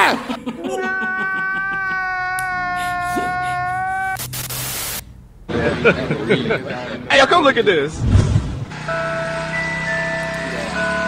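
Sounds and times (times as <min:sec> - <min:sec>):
low rising sound: 0:07.9 - 0:09.2.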